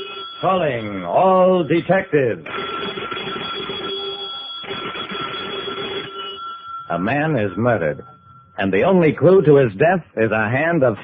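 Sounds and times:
electric bell ringing: 0.0 - 9.0.

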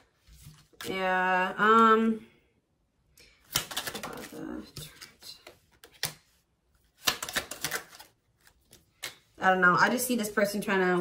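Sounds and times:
cards being shuffled: 0.0 - 1.0, 3.3 - 9.4.

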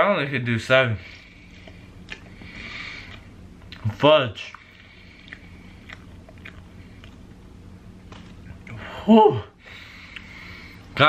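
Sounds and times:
chewing marshmallows: 1.5 - 7.4.

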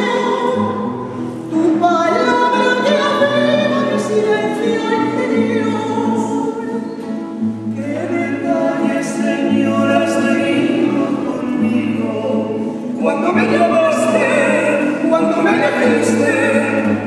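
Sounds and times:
classical guitar: 0.0 - 17.0
choir singing a hymn: 7.8 - 17.0.

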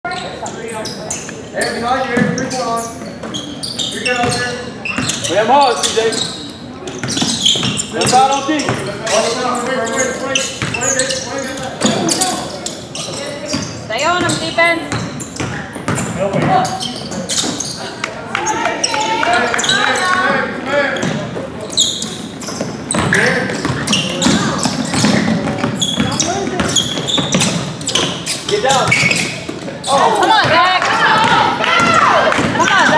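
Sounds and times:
voices calling out: 0.1 - 32.9
people calling out: 17.8 - 20.4, 29.8 - 32.9
basketball dribbled on hardwood floor: 23.0 - 28.2
basketball bouncing on hardwood: 31.2 - 32.9.

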